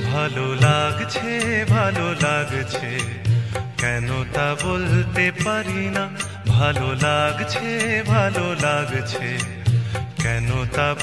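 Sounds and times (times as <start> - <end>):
steady percussion: 0.0 - 11.0
bass line: 3.2 - 7.4.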